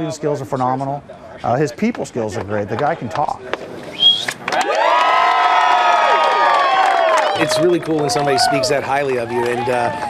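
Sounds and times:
high whistle: 3.9 - 4.4
crowd cheering and whooping: 4.5 - 10.0.

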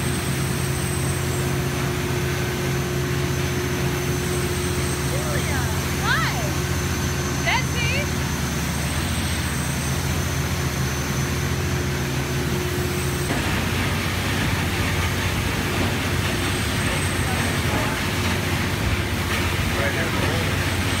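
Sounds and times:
engine room machinery drone: 0.0 - 21.0.

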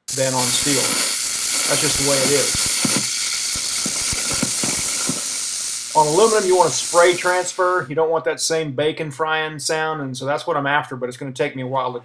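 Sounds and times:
welder arc frying hiss: 0.0 - 7.8.

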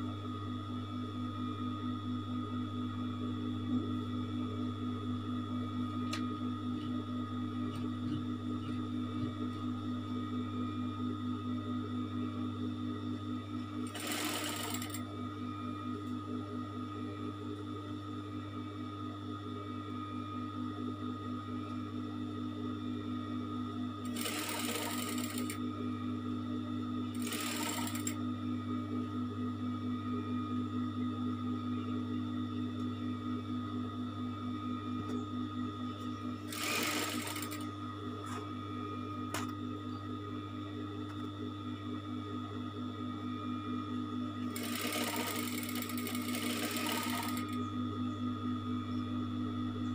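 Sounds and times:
sewing machine stitching: 13.9 - 15.0, 24.1 - 25.6, 27.2 - 28.2, 36.5 - 37.6, 44.6 - 47.6.

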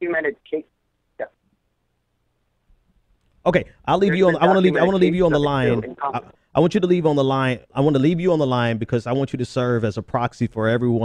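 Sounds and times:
person speaking over telephone: 0.0 - 0.6, 4.0 - 6.3.

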